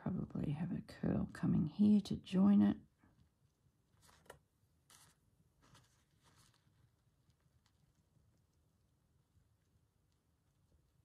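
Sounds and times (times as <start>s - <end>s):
pen scratching on fabric: 3.9s - 6.8s.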